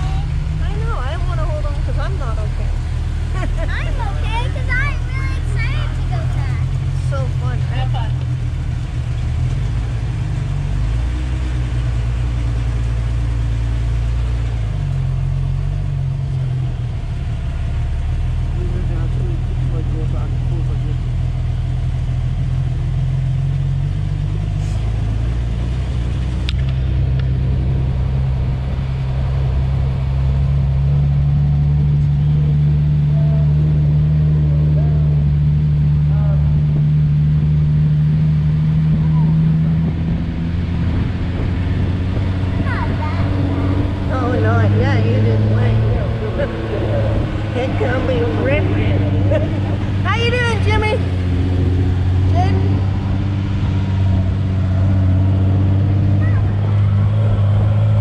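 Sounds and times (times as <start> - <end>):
dune buggy engine running: 0.0 - 58.0.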